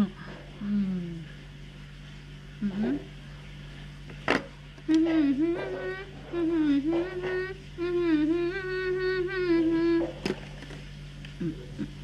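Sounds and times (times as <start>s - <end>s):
woman humming: 0.0s - 1.4s, 4.8s - 10.4s, 11.3s - 12.0s.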